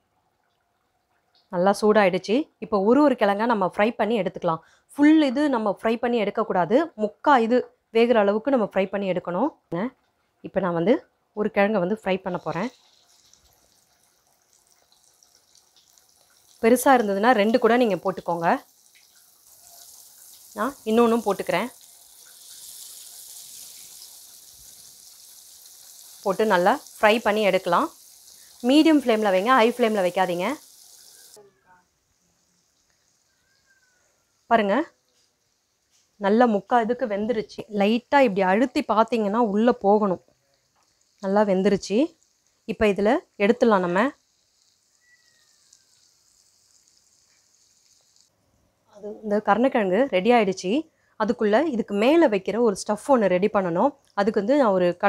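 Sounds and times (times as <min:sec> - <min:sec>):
oil sizzling in a pan: 0:11.6 - 0:48.4.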